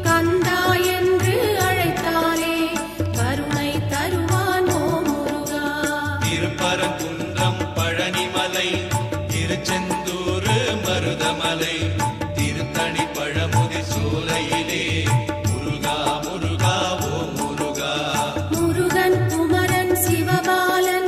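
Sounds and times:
devotional music with drum beat: 0.0s - 21.0s.

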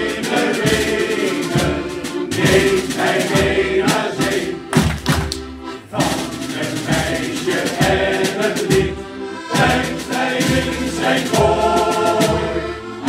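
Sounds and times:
men's choir singing: 0.0s - 4.9s, 5.6s - 13.0s
low accompaniment thumps: 0.0s - 13.0s.

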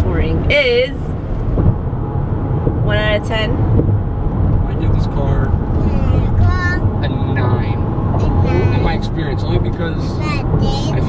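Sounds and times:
car cabin road and engine rumble: 0.0s - 11.0s
voices: 4.7s - 11.0s.

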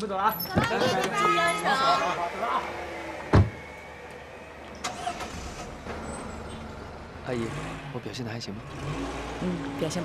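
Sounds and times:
vehicle engine rumbling: 0.0s - 10.0s
car door shutting: 3.2s - 3.6s.

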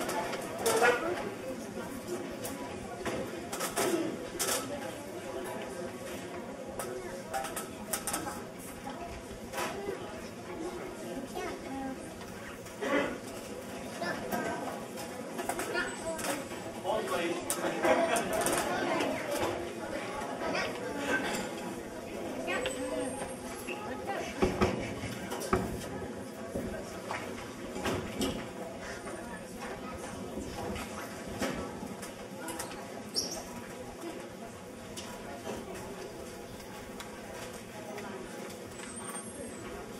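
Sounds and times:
audience chatter: 0.0s - 39.9s.

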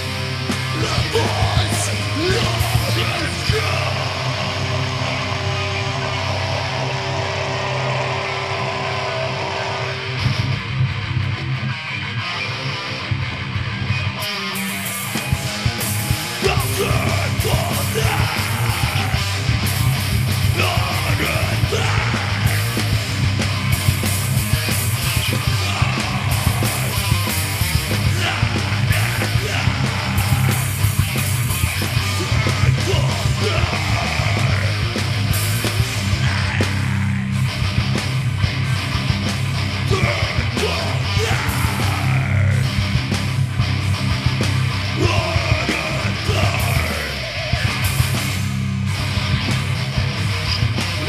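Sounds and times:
heavy metal band playing: 0.0s - 51.0s
person yelling vocals: 0.7s - 4.5s, 16.4s - 19.4s, 20.5s - 22.8s, 25.2s - 27.1s, 27.8s - 30.8s, 31.8s - 35.0s, 36.1s - 37.4s, 39.9s - 42.8s, 45.0s - 47.6s.

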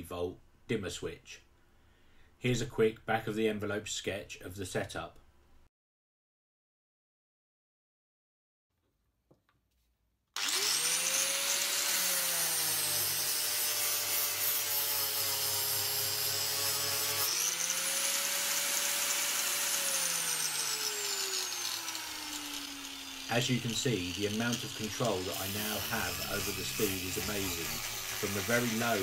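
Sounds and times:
angle grinder whine: 10.4s - 29.0s
sanding disc on wood: 10.4s - 29.0s.

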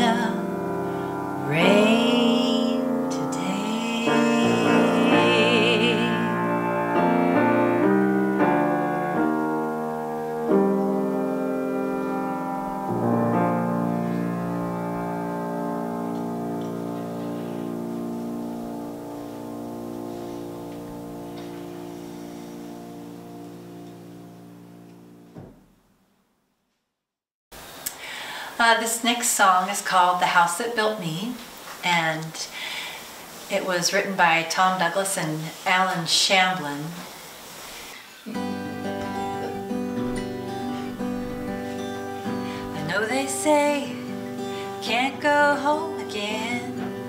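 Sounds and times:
grand piano chords: 0.0s - 25.7s, 38.2s - 47.0s.

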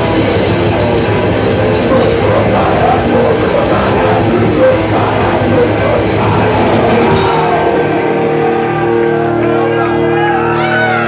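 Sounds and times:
drum kit: 0.0s - 9.4s
distorted electric guitar: 0.0s - 11.0s.

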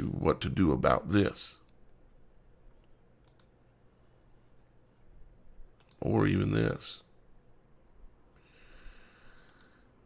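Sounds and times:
faint computer mouse clicks: 2.8s - 3.6s, 9.4s - 9.8s.

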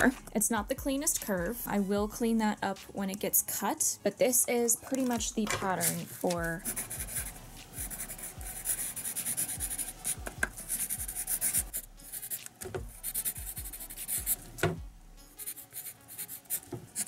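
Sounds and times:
pencil scratching on paper: 5.6s - 14.4s, 15.4s - 17.0s.

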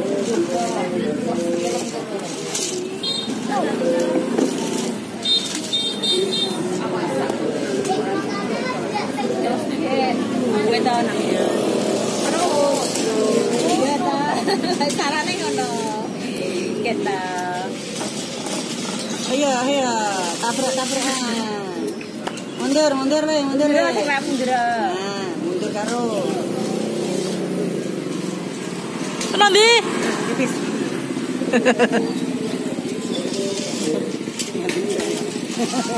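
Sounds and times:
people chattering: 0.0s - 35.9s
toy car motor whirring: 11.4s - 16.1s.

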